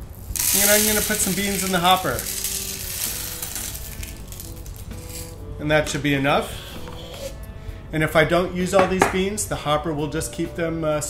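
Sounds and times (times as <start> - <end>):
coffee beans pouring: 0.0 - 5.4.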